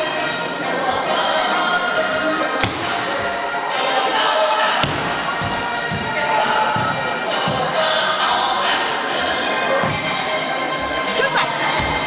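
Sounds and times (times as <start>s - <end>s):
background music: 0.0s - 12.0s
voices: 0.0s - 12.0s.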